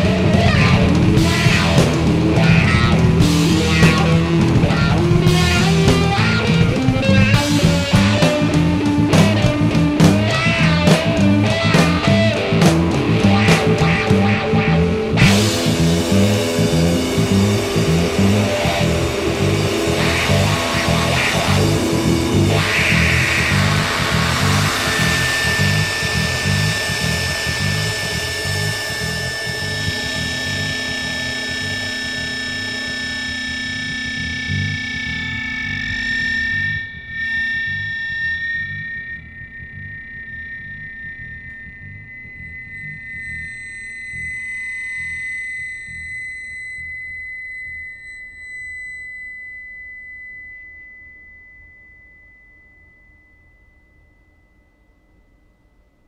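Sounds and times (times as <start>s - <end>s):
distorted noise-rock band: 0.0s - 47.7s
held high tone: 0.0s - 56.0s.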